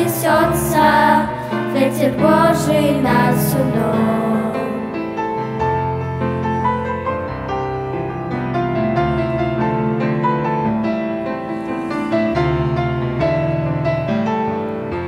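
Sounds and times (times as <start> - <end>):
grand piano playing hymn chords: 0.0 - 15.0.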